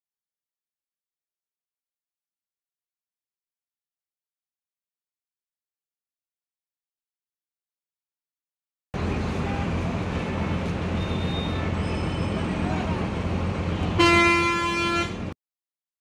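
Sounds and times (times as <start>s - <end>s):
voices: 9.0s - 14.6s
traffic engine hum: 9.0s - 15.4s
vehicle horn blast: 11.0s - 12.4s, 13.7s - 15.4s.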